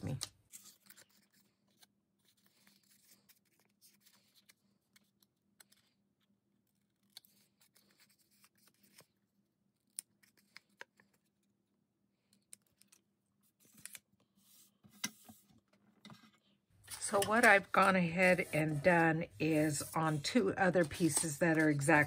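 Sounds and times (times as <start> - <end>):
paper rustling: 0.0 - 9.2, 12.6 - 15.5, 16.8 - 22.0.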